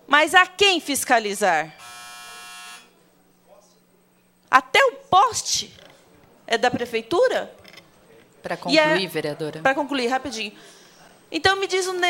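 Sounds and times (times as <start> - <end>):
electronic buzzer: 1.7 - 3.0.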